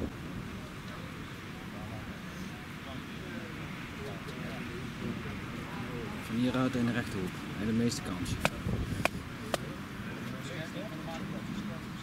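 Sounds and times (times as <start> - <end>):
faint voices murmuring: 0.0 - 12.0
sharp claps or knocks: 8.4 - 9.7.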